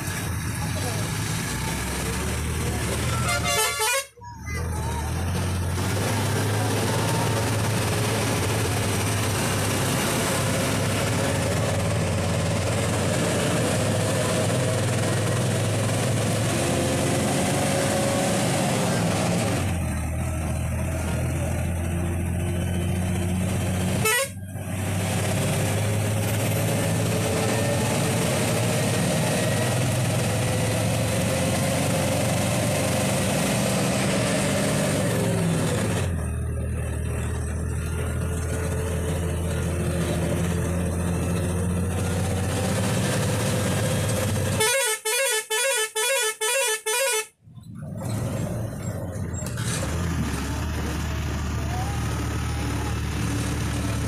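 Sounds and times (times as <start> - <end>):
bus engine under load: 0.0 - 54.0
short pulsing horn blasts: 3.1 - 4.2, 24.0 - 24.4, 44.6 - 47.4.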